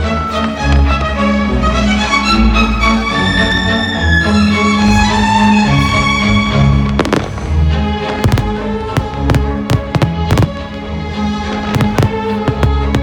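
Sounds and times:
fireworks bangs: 0:06.8 - 0:13.0.

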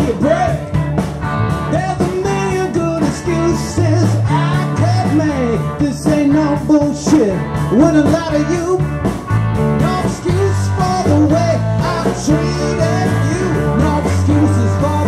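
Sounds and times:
harmonica lead line: 0:00.0 - 0:15.0
rock band playing: 0:00.0 - 0:15.0.

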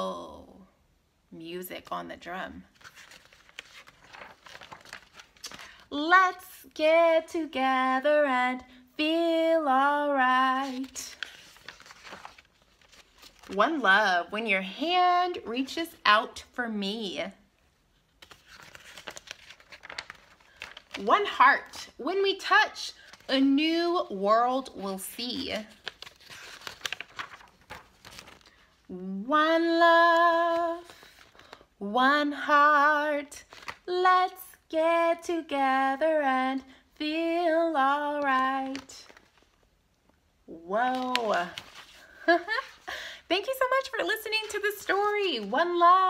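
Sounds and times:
paper page rustling: 0:02.7 - 0:05.9, 0:10.3 - 0:13.9, 0:18.1 - 0:21.4, 0:22.9 - 0:24.0, 0:24.6 - 0:28.9, 0:30.0 - 0:31.6, 0:33.4 - 0:33.9, 0:38.2 - 0:39.7, 0:40.8 - 0:46.0.

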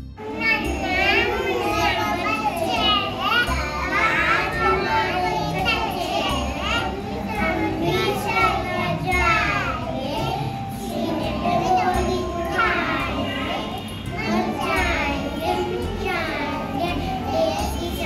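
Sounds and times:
children singing: 0:00.0 - 0:18.0.

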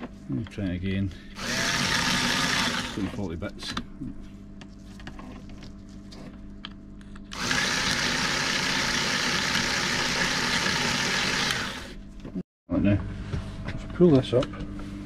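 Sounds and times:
electric motor whirring: 0:01.4 - 0:03.2, 0:07.3 - 0:12.0.

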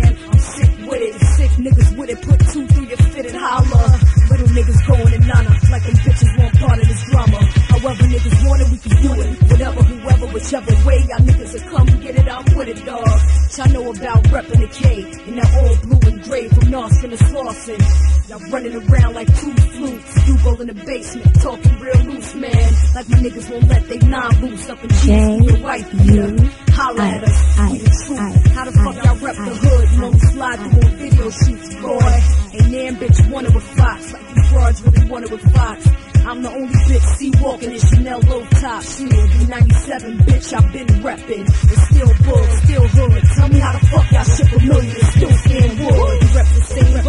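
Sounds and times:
hip hop beat with heavy bass: 0:00.0 - 0:47.0
rapping over a beat: 0:00.0 - 0:47.0.

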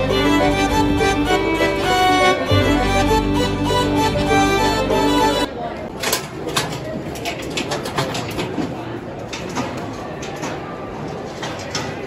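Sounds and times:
crowd murmur in a hall: 0:00.0 - 0:12.0.

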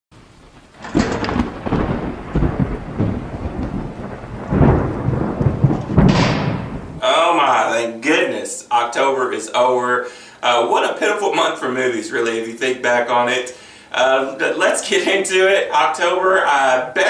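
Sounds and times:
rain: 0:00.2 - 0:07.7
thunder claps: 0:00.2 - 0:07.8.

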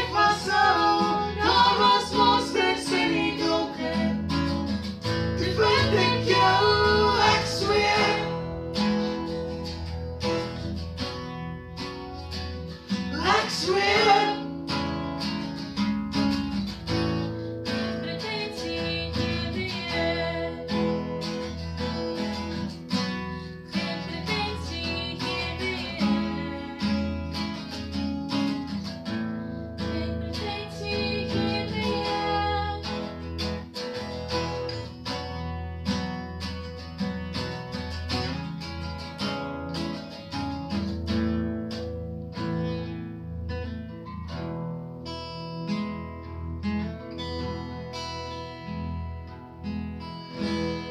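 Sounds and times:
woman singing: 0:00.0 - 0:04.4, 0:05.4 - 0:08.4, 0:13.1 - 0:14.5, 0:18.0 - 0:21.0, 0:23.7 - 0:27.2, 0:29.8 - 0:33.2
acoustic guitar strumming: 0:00.0 - 0:50.9.

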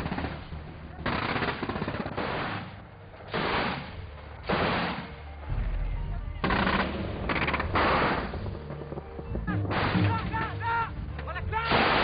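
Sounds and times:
anti-aircraft gun automatic fire: 0:06.4 - 0:09.0.

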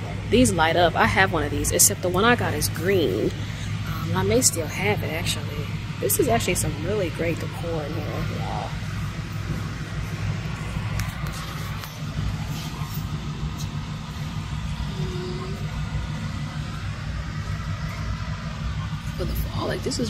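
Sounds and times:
low rumble: 0:00.0 - 0:20.0.

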